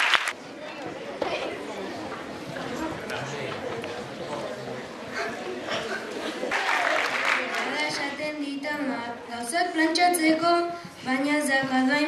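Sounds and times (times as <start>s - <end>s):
applause: 0.0s - 0.4s, 6.5s - 8.0s
murmur of audience chatter: 0.0s - 12.0s.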